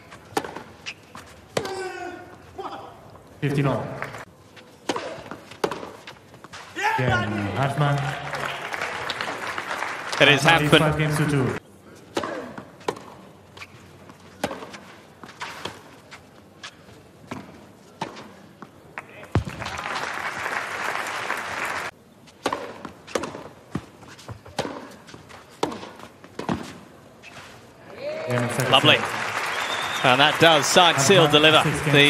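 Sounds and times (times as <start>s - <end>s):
tennis ball bouncing: 0.3s - 1.8s, 4.8s - 6.6s, 12.1s - 15.8s, 22.4s - 26.8s
tennis ball hit by rackets: 4.8s - 6.1s, 14.4s - 15.8s, 22.4s - 23.8s, 24.5s - 25.0s, 25.6s - 26.8s
crowd noise: 6.8s - 12.2s, 27.6s - 32.0s.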